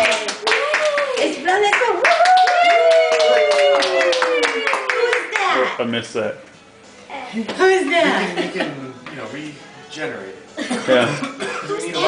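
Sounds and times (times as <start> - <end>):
group clapping hands: 0.0 - 5.6
high-pitched voices cheering: 2.0 - 5.2.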